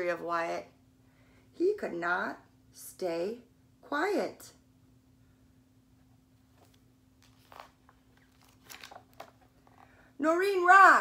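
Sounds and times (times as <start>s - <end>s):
paper page rustling: 6.5s - 10.0s.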